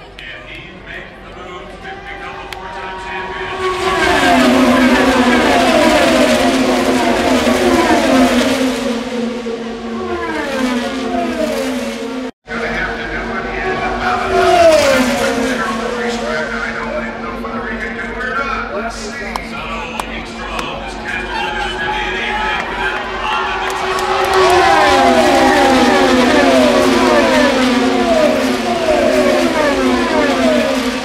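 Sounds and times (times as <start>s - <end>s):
race cars passing at speed: 0.2s - 31.0s.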